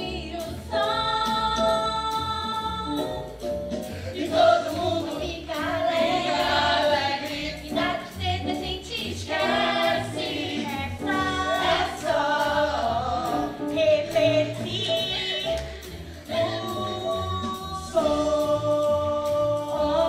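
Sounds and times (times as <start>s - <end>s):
voices singing together: 0.0s - 2.9s, 4.0s - 20.0s
instrumental accompaniment with beat: 0.0s - 20.0s.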